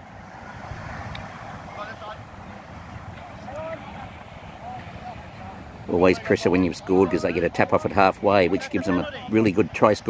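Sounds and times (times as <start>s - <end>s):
wind rumbling on microphone: 0.0s - 10.0s
faint distant shouts: 0.1s - 10.0s.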